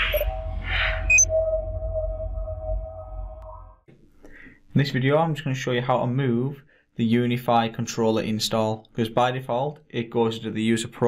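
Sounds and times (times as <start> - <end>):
held synthetic tone: 0.0 - 3.8
deep rumble: 0.0 - 3.9.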